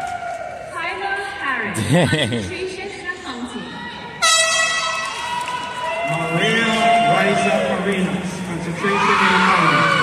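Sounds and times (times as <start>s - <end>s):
air horn blast: 4.2s - 5.1s.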